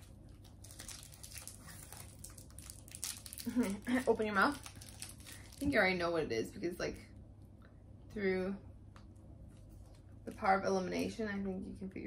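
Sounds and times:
chocolate wrapper crinkling: 0.0s - 5.9s.

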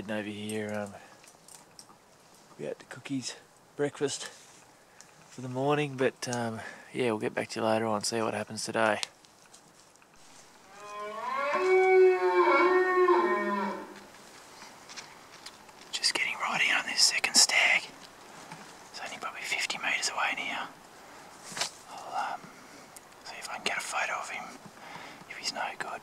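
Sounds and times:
elk bugling: 10.7s - 14.1s.

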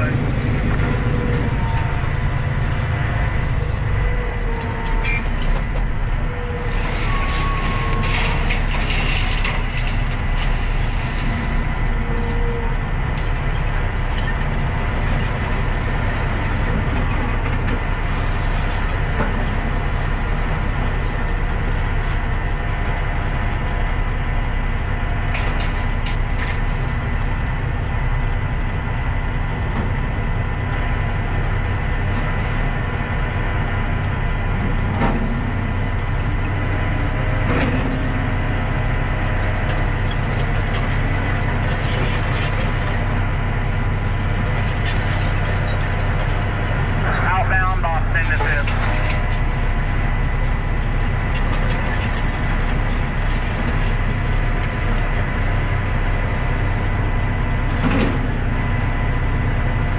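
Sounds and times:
diesel truck engine idling: 0.0s - 6.6s.

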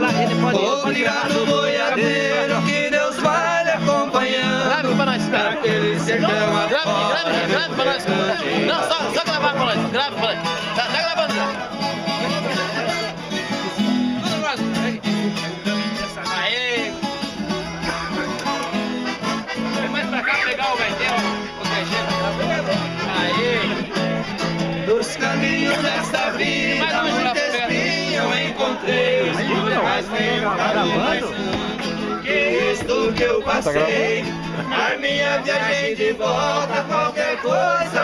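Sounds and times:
folk guitar playing: 0.0s - 38.0s
people's voices in background: 0.0s - 38.0s.

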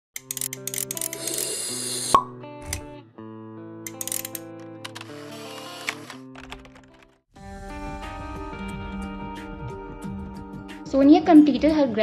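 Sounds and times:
sustained music chords: 7.4s - 11.0s.

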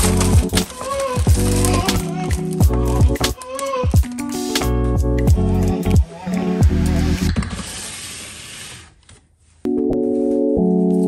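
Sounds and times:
background music: 0.0s - 7.4s
plastic basket sliding on shelf: 7.4s - 9.2s.

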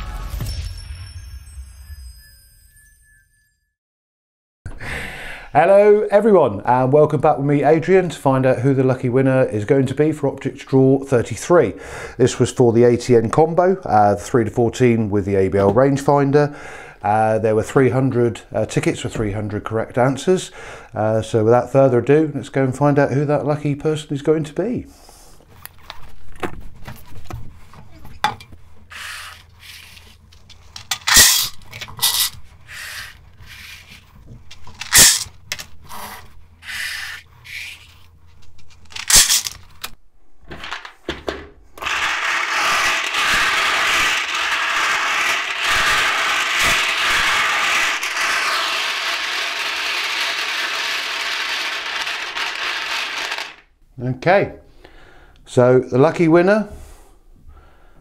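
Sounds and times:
plastic balls clicking and knocking: 33.0s - 35.8s, 37.5s - 41.2s, 41.8s - 53.7s
plastic balls clattering in a bowl: 38.8s - 39.7s, 41.8s - 53.7s.

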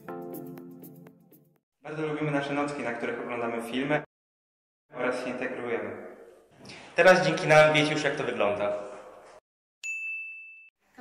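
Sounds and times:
high bell-like ding: 9.8s - 10.8s.

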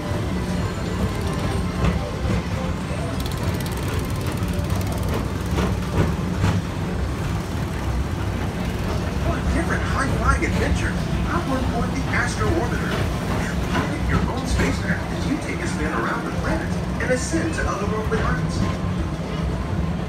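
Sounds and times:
low rumble of a track ride car: 0.0s - 20.0s.

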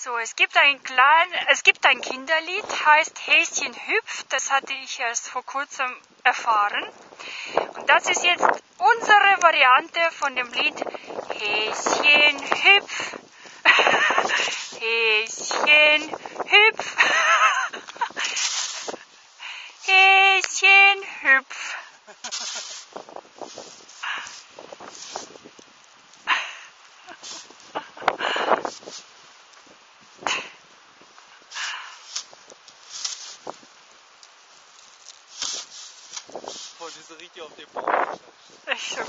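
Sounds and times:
dog paws crunching in snow: 6.8s - 39.0s
shovel scraping snow: 11.4s - 20.9s, 22.1s - 25.5s, 27.1s - 29.2s, 31.5s - 33.7s, 34.7s - 37.2s, 38.0s - 39.0s
person laughing: 12.6s - 14.7s, 16.7s - 19.0s, 21.5s - 22.9s, 26.3s - 28.6s, 38.7s - 39.0s.

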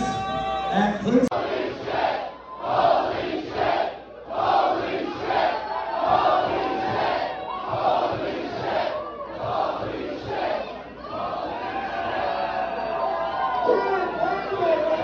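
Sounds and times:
crowd chanting in unison: 1.3s - 12.9s.

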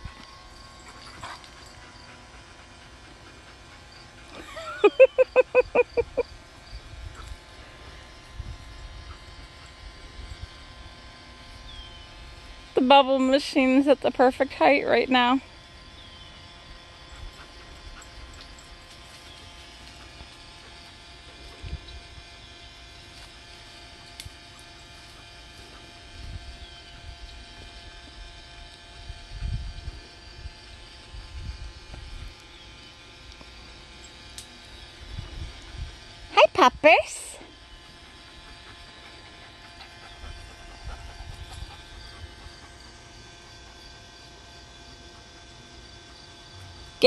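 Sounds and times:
bubble machine motor humming: 0.0s - 47.0s.

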